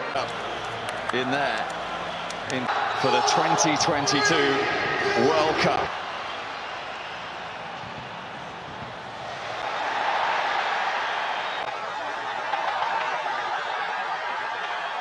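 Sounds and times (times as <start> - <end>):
stadium crowd noise: 0.0 - 15.0.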